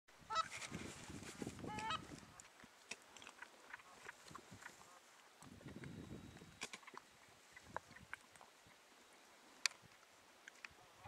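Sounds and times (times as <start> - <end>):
goose honking: 0.3 - 0.5, 1.7 - 2.4.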